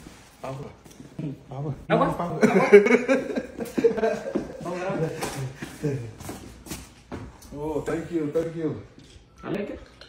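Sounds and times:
men talking: 0.4 - 6.4, 7.4 - 10.0.

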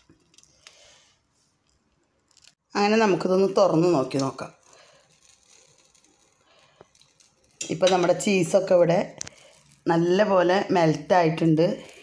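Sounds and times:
woman speaking: 2.7 - 4.6, 7.6 - 9.2, 9.8 - 12.0.

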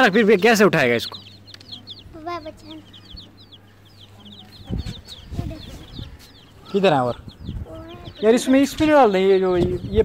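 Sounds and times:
baby chicks peeping: 0.0 - 10.0.

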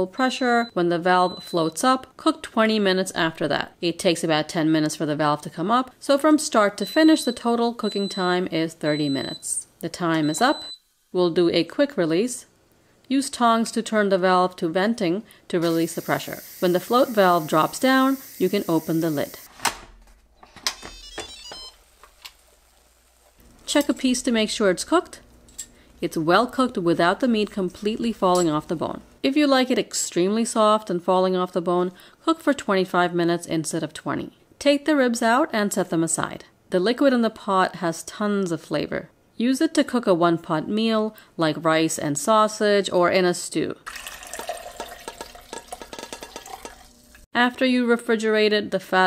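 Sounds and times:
liquid pouring into glass cup: 43.9 - 47.2.

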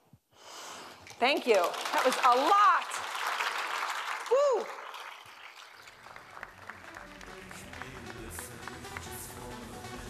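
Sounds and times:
audience applause: 1.2 - 10.0
electronic music: 6.7 - 10.0.

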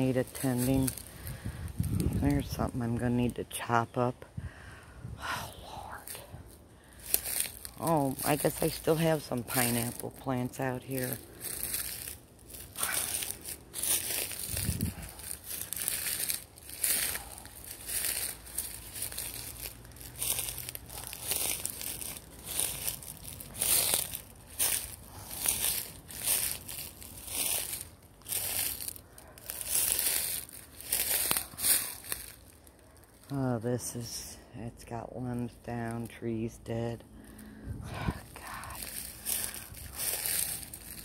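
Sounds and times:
footsteps crunching dry leaves: 0.0 - 3.1, 5.7 - 33.5, 37.0 - 41.0.

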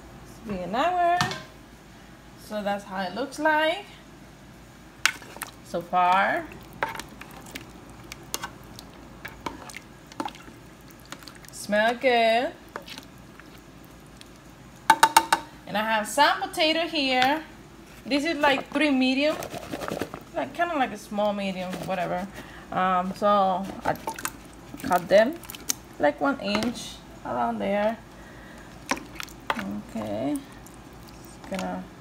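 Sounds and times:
low steady hum: 0.0 - 32.0
sharp clicks from cooking pot: 14.9 - 15.5.

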